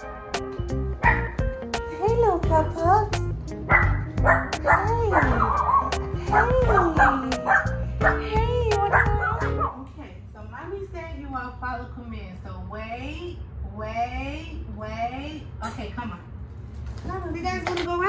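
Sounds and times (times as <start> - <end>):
background music with low notes: 0.0 - 9.8
small dogs yelping and barking: 1.0 - 1.5, 3.7 - 8.2, 8.9 - 9.8.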